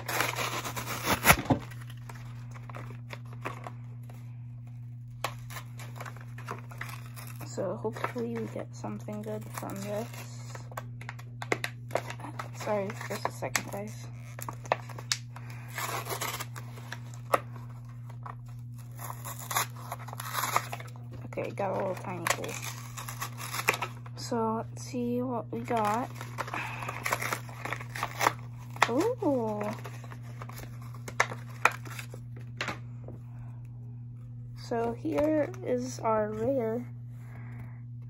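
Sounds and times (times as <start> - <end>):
foil wrapper crinkling and tearing: 0.0 - 4.2, 5.0 - 24.1, 25.6 - 32.8
low hum: 0.0 - 38.0.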